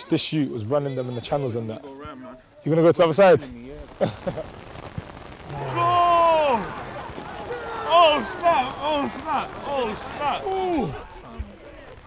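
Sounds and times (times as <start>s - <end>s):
heavy rain hissing: 3.5s - 12.0s
man shouting: 5.5s - 6.8s, 7.5s - 11.2s.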